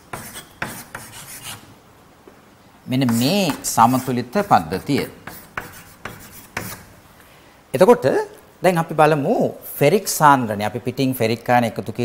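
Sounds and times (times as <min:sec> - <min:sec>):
chalk scratching on chalkboard: 0:00.0 - 0:01.6, 0:03.0 - 0:06.9.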